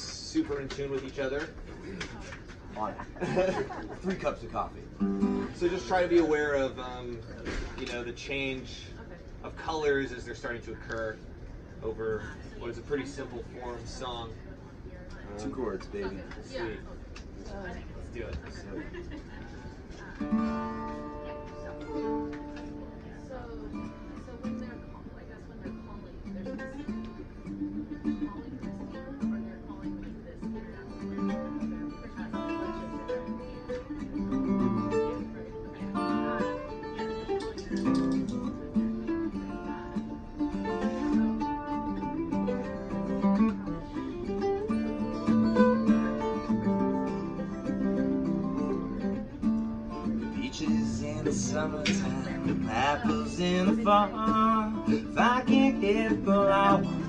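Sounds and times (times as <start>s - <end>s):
acoustic guitar: 0.0s - 57.0s
plucked string instrument: 20.2s - 25.2s, 25.8s - 57.0s.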